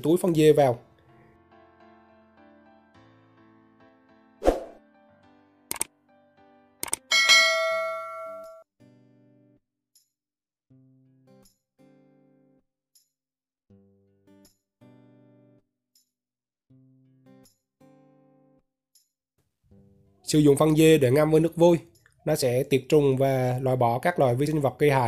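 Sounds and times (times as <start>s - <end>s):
bright bell-like chime: 7.1s - 8.6s.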